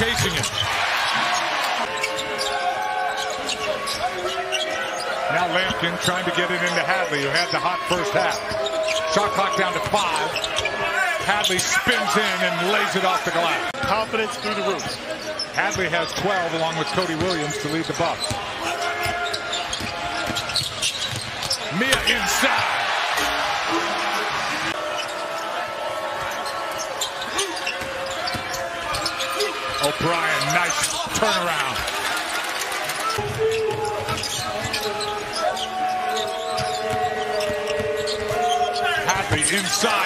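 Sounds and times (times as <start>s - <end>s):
murmur of arena crowd: 0.0s - 40.0s.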